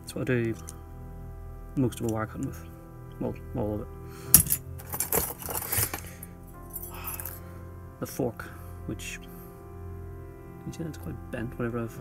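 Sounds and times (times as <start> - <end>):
background music: 0.0 - 12.0
metal tools clinking: 0.5 - 0.8, 4.3 - 7.4.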